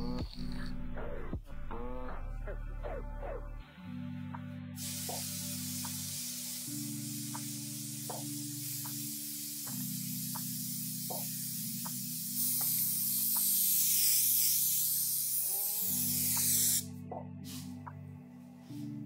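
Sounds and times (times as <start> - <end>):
background music: 0.0 - 19.0
aerosol spray can hissing: 4.8 - 17.8.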